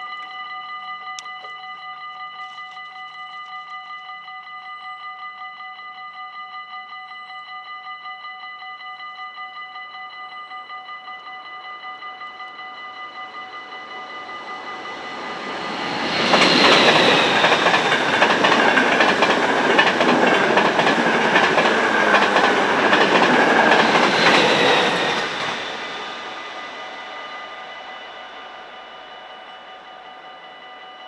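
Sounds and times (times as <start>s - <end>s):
level-crossing bell ringing: 0.0s - 31.0s
train wheels clattering over rails: 14.0s - 27.5s.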